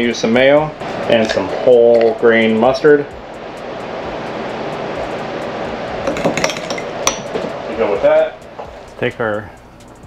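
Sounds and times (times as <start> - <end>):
soft steady hiss: 0.0 - 10.0.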